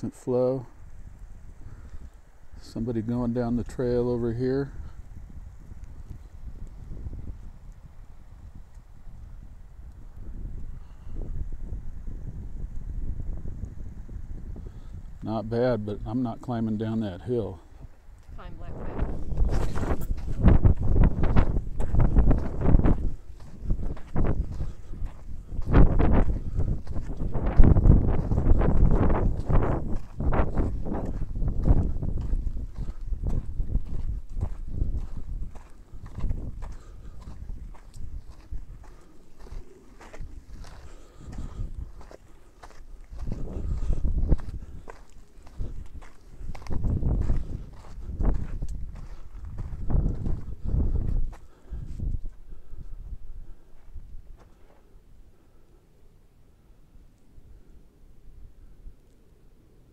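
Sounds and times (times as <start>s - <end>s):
footsteps on dirt trail: 0.8s - 55.0s.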